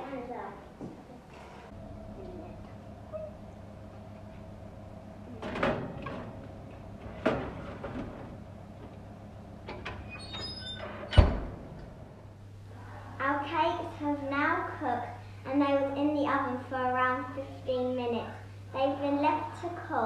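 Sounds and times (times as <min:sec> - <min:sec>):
steady low hum: 0:00.0 - 0:20.0
oven door thumping shut: 0:05.4 - 0:08.4, 0:10.9 - 0:11.8
metal trays sliding onto racks: 0:07.0 - 0:08.4.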